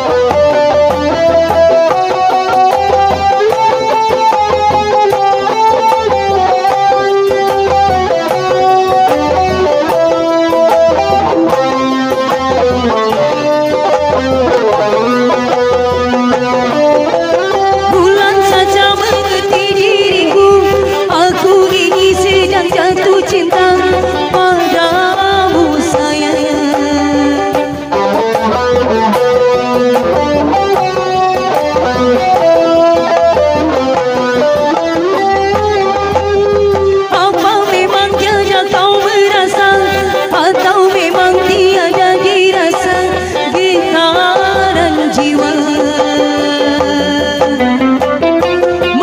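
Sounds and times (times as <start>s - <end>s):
barrel drum: 0.0s - 49.0s
guitar-like melody: 0.0s - 49.0s
hand drums: 0.0s - 49.0s
street band music: 0.0s - 49.0s.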